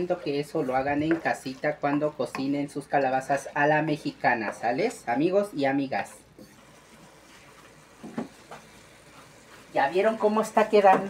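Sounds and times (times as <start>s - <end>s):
wooden spoon stirring: 0.0s - 11.0s
vegetables sizzling in a pan: 6.4s - 11.0s.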